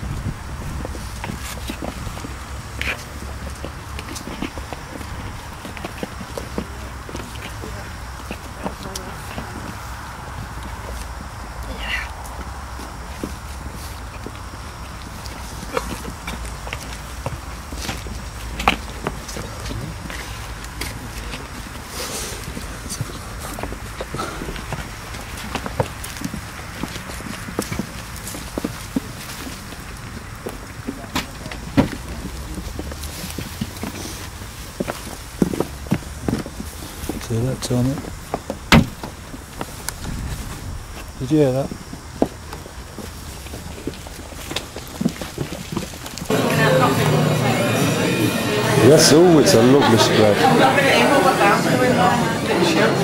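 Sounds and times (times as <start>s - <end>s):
footsteps and shuffling: 0.0s - 53.0s
faint indistinct voices: 46.2s - 53.0s.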